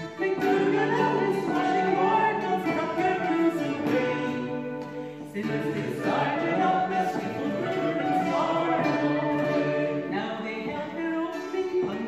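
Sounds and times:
group singing folk song: 0.0 - 12.0.

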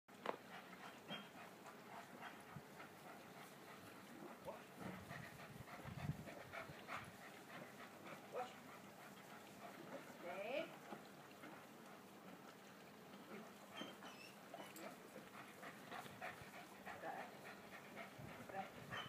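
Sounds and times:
dog panting: 0.2 - 19.0.

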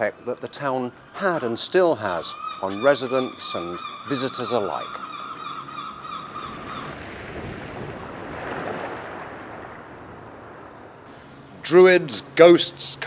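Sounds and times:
sea wave washing: 5.9 - 13.0.

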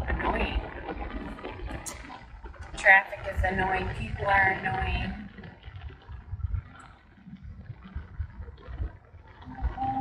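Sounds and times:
low uneven rumble in car cabin: 0.0 - 10.0.

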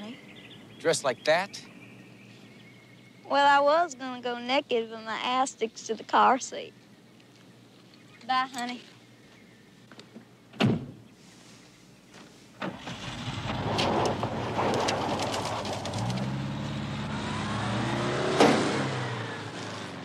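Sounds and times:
car door shutting: 10.5 - 11.0.

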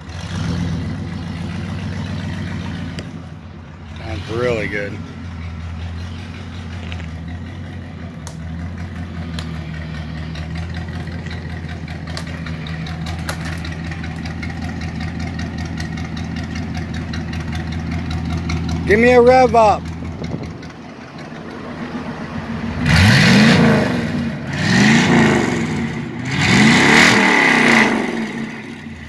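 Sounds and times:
car engine idling: 0.0 - 29.0.

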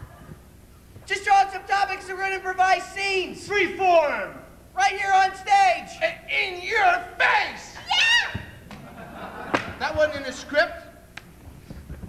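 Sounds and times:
performers shouting and yelping: 1.0 - 8.8
feet thudding on stage floor: 9.5 - 10.2.

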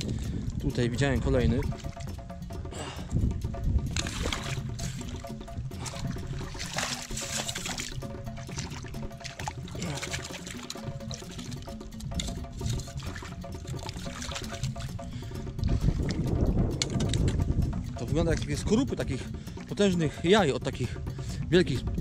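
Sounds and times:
background music: 0.0 - 22.0
water sloshing and splashing: 0.0 - 22.0.

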